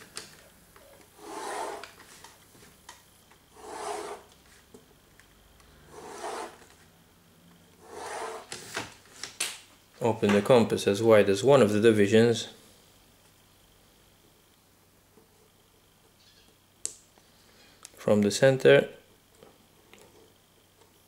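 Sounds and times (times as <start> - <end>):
pencil rubbing on paper: 1.2 - 1.9, 3.6 - 4.3, 5.9 - 6.6, 7.8 - 8.5.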